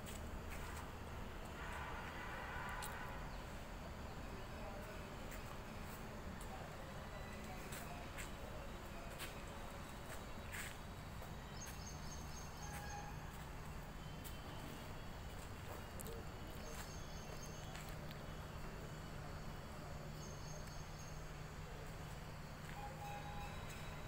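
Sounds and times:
faint distant voices: 0.0 - 24.0.

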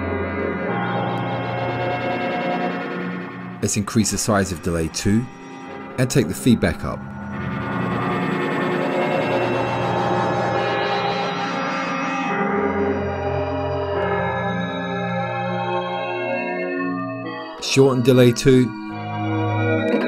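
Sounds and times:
synth pad chords with chorus: 0.0 - 20.0.

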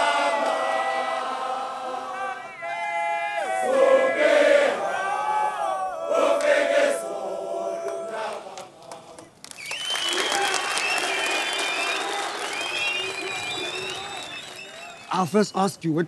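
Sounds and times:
crowd cheering and clapping: 0.0 - 15.3
high shouts: 2.0 - 6.4.

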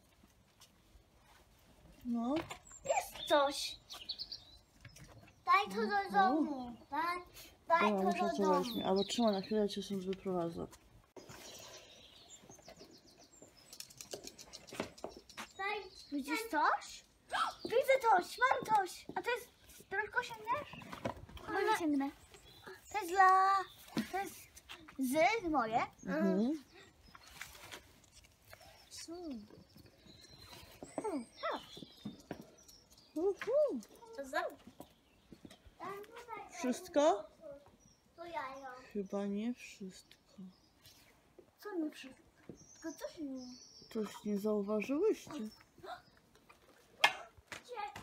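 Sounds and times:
small bird chirping: 1.2 - 48.0
girl speaking: 2.1 - 3.9, 5.4 - 9.1, 15.6 - 20.8, 21.4 - 26.6, 33.2 - 34.6, 35.8 - 39.0, 41.6 - 42.2, 42.8 - 44.2, 47.6 - 48.0
child's voice: 2.3 - 3.8, 5.4 - 9.0, 15.6 - 20.8, 21.4 - 26.4, 33.2 - 34.7, 35.8 - 38.9, 41.6 - 42.2, 42.8 - 43.6, 47.6 - 48.0.

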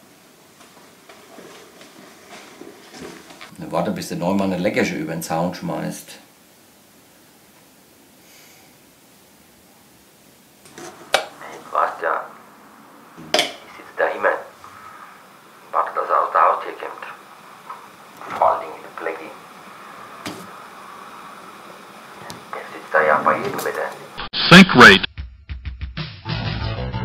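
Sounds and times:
soft footsteps: 0.0 - 3.6
short spoken word: 22.6 - 25.1.

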